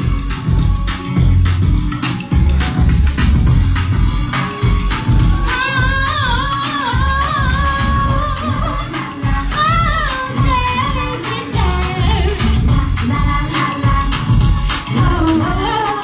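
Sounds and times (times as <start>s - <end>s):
backing music with pulsing bass: 0.0s - 16.0s
woman singing into a microphone: 5.2s - 16.0s.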